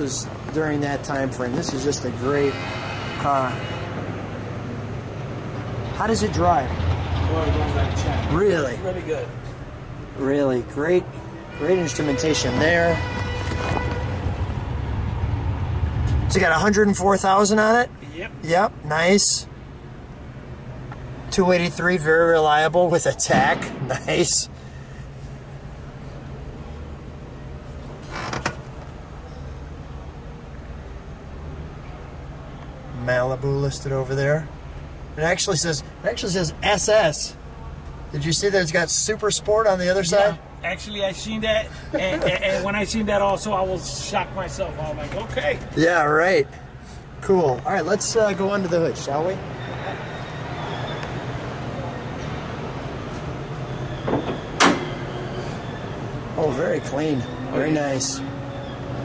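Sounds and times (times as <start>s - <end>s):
steady background hum: 0.0s - 59.0s.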